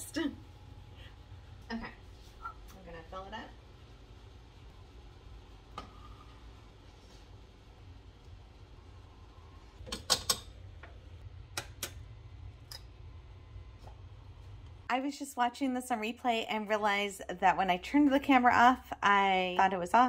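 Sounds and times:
low steady hum: 0.0s - 20.0s.

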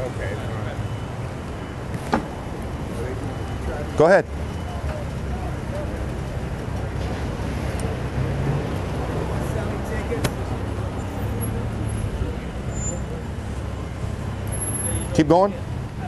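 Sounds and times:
city street traffic rumble: 0.0s - 16.0s.

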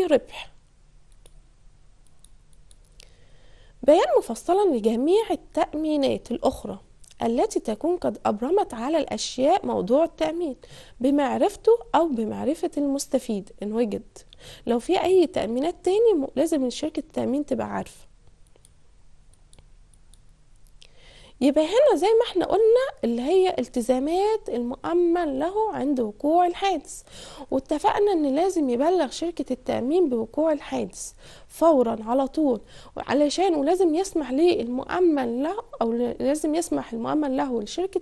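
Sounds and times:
woman speaking: 0.0s - 0.6s, 3.8s - 18.1s, 21.4s - 38.0s
low steady hum: 0.0s - 38.0s
faint sharp clicks: 1.1s - 1.4s, 2.0s - 3.1s, 18.2s - 20.9s.

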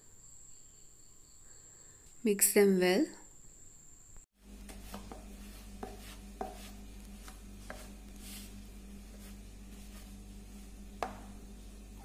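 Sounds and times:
whisk scraping in plastic bowl: 4.6s - 11.3s.

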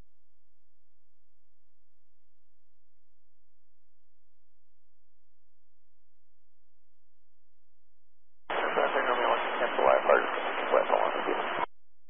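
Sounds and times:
voice over radio static: 8.5s - 11.7s.

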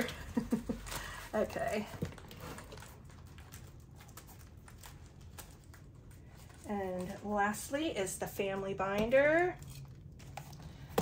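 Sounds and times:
binder and envelopes handled: 0.0s - 7.8s.

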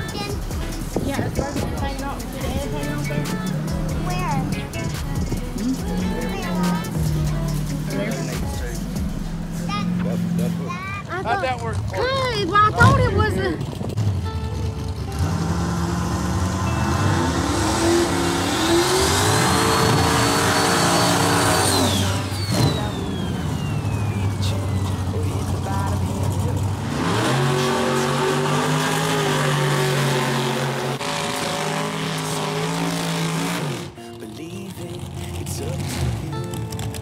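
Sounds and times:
drag racing engines revving: 0.0s - 37.0s
engine falling whine: 11.6s - 37.0s.

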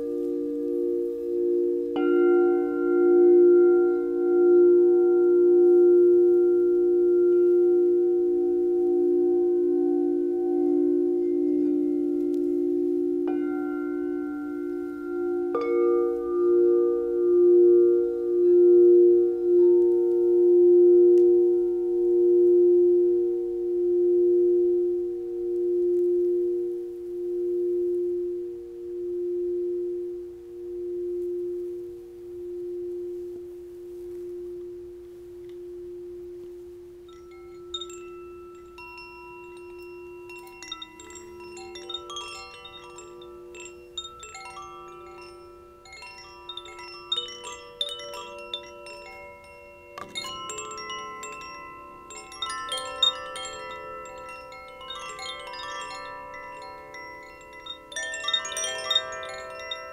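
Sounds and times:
crystal singing bowl ringing: 0.0s - 59.9s
bamboo chimes tinkling: 36.9s - 59.9s.

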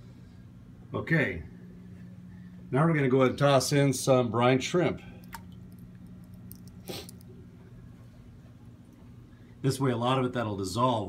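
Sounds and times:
electrical hum of aquarium equipment: 0.0s - 11.0s.

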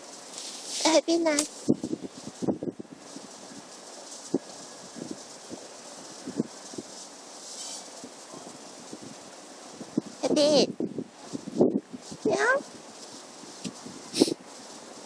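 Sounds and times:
steady hiss: 0.0s - 15.0s.

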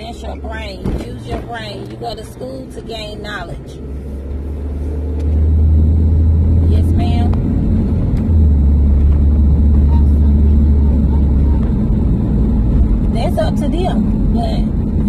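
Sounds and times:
car engine and road noise: 0.0s - 15.0s.

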